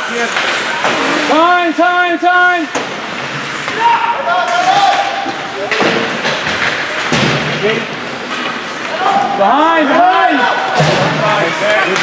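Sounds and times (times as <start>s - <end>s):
rink crowd noise: 0.0s - 12.0s.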